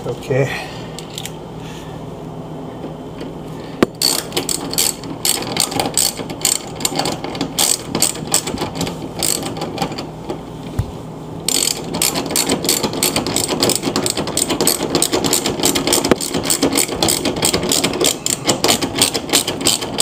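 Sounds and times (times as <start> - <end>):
socket ratchet clicking: 4.0 - 8.5, 11.5 - 20.0.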